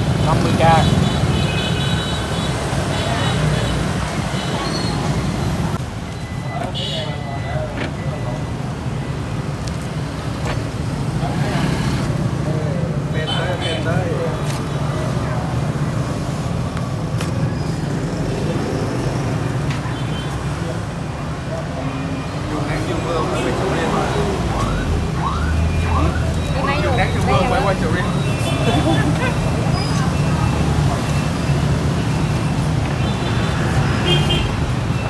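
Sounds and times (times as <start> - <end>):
road traffic rumble: 0.0 - 35.0
people talking: 0.2 - 0.9, 6.4 - 8.5, 12.5 - 15.9, 22.5 - 31.3.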